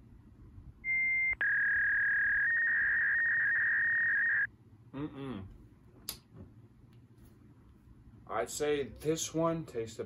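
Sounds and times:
electronic beep tone: 0:00.9 - 0:04.5.

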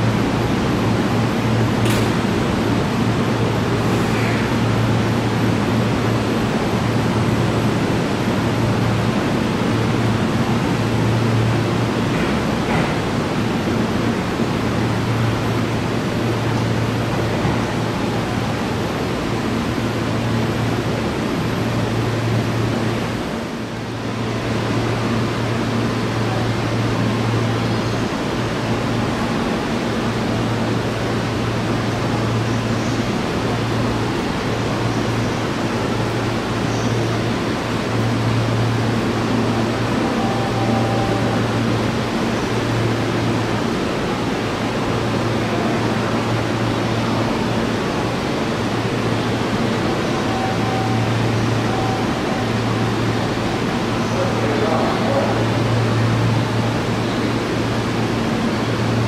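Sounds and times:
train air-conditioning rush: 0:00.0 - 0:59.0.

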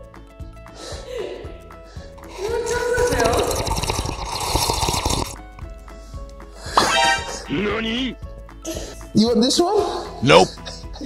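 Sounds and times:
toddler slurping through a straw: 0:03.0 - 0:05.4.

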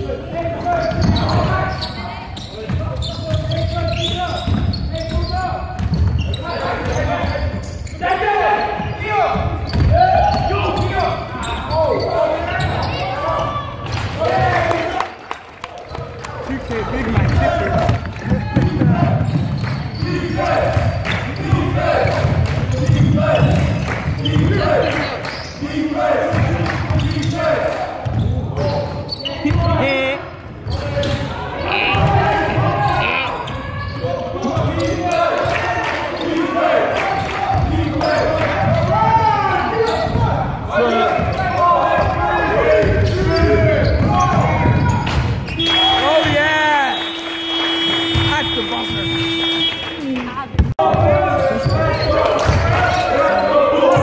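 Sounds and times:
basketball dribbling on hall floor: 0:00.4 - 0:07.7, 0:09.2 - 0:11.1, 0:17.0 - 0:25.0, 0:37.1 - 0:49.8
people calling out: 0:28.6 - 0:54.0.

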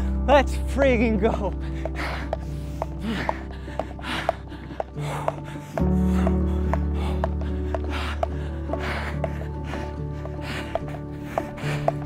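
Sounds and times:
background music: 0:00.0 - 0:12.0
man gasping breaths: 0:01.6 - 0:12.0.

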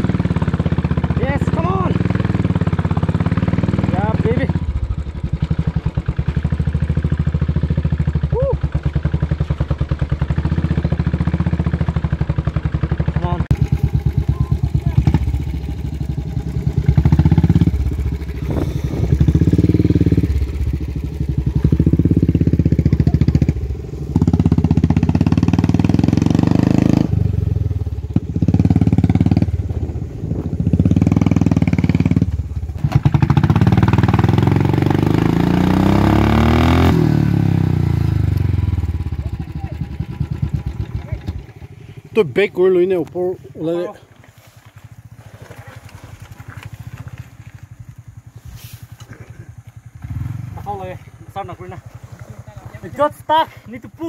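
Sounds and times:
motorcycle engine revving: 0:00.0 - 0:44.0, 0:44.6 - 0:54.0.

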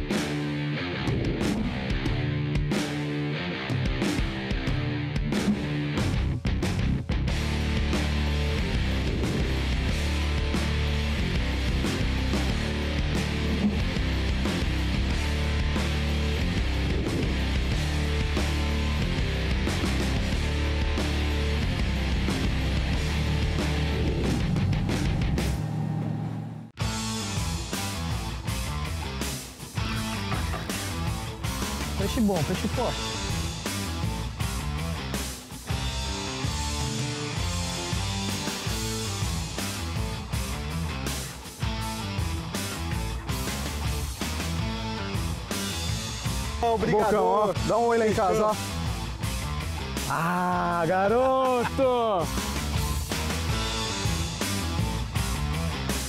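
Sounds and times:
rock music with electric guitar: 0:00.0 - 0:25.6, 0:26.8 - 0:56.0.

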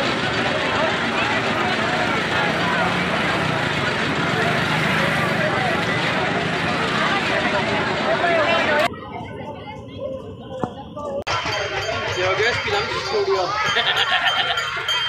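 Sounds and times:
crowd babble: 0:00.0 - 0:15.0.

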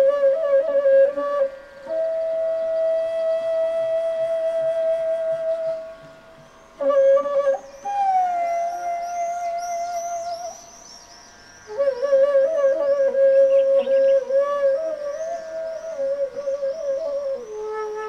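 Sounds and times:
bamboo flute playing: 0:00.0 - 0:18.0.

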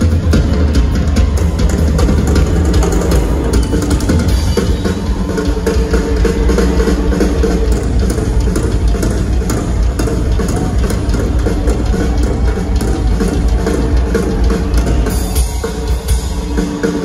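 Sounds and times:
rock drum solo: 0:00.0 - 0:17.0.

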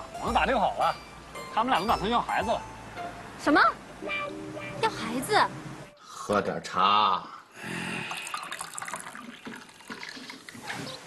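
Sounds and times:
tea pouring into cups: 0:08.0 - 0:11.0.

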